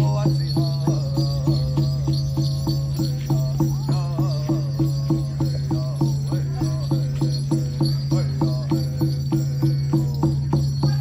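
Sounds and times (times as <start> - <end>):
drum beaten in steady rhythm: 0.0 - 11.0
high singing voice: 0.0 - 11.0.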